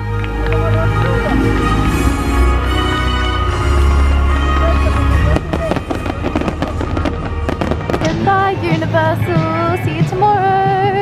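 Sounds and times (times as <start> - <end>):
loud music: 0.0 - 11.0
fireworks crackling and popping: 3.6 - 11.0.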